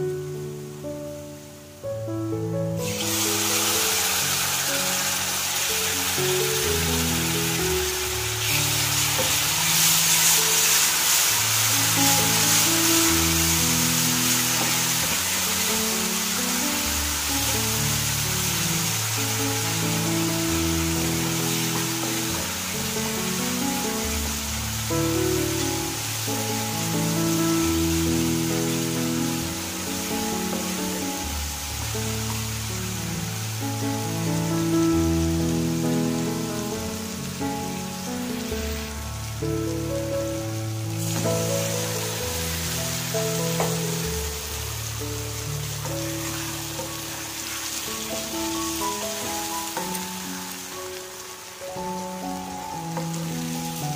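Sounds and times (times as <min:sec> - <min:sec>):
slow background music: 0:00.0 - 0:53.9
masala sizzling in hot oil: 0:02.7 - 0:53.9.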